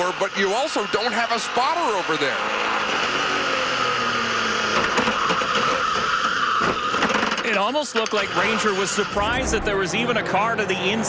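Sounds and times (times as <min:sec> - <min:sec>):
race car engine running hard: 0:09.0 - 0:10.2.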